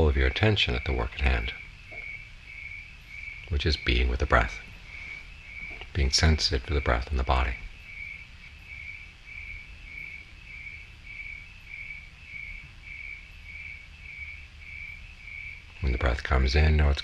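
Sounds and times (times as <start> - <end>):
cricket chirping: 0.0 - 17.0
low background rumble: 0.0 - 17.0.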